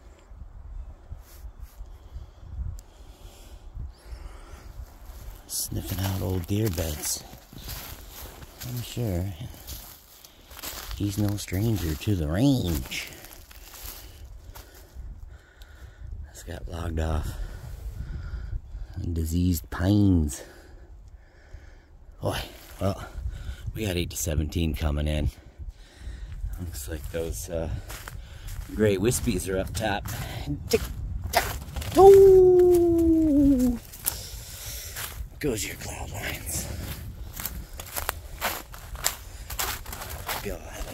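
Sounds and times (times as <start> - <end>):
footsteps crunching through snow and leaves: 4.9 - 14.9, 26.6 - 40.9
voice holding a long boom: 32.0 - 33.8.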